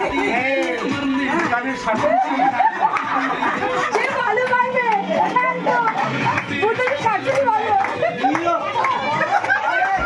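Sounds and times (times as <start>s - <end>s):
people laughing: 0.0s - 6.8s, 7.5s - 10.0s
group of people talking: 0.0s - 10.0s.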